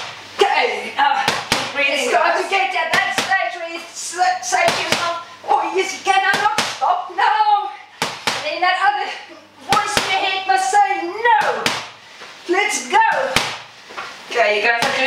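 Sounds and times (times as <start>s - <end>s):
boxing gloves smacking pads: 1.2s - 1.8s, 2.9s - 3.4s, 4.6s - 5.2s, 6.2s - 6.8s, 8.0s - 8.5s, 9.7s - 10.4s, 11.4s - 12.0s, 13.2s - 13.7s.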